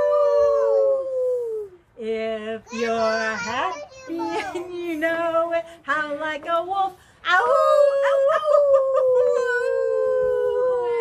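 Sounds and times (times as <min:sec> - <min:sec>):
woman and boy howling: 0:00.0 - 0:01.7, 0:07.4 - 0:11.0.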